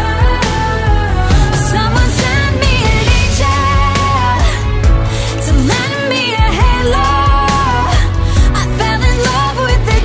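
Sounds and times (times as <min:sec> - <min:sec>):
pop-rock band playing: 0:00.0 - 0:10.0
woman singing: 0:00.0 - 0:10.0.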